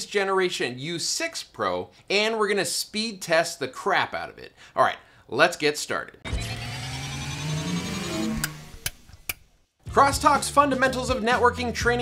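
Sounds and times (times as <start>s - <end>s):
rising synth sweep: 6.3s - 9.1s.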